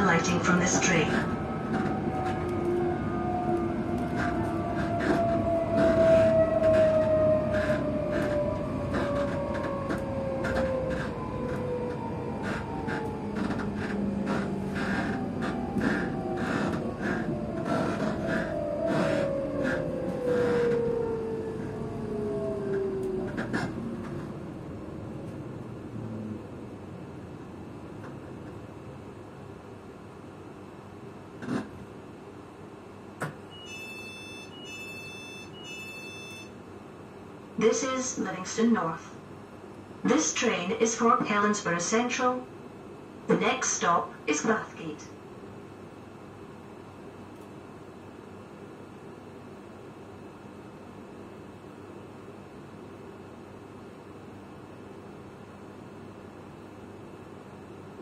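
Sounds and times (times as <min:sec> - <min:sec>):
train traction motor whine: 0:00.0 - 0:29.0
steady train hum: 0:00.0 - 0:58.0.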